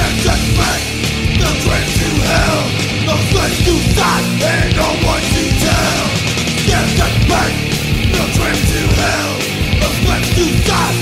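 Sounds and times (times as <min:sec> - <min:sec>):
hardcore punk band playing: 0:00.0 - 0:11.0.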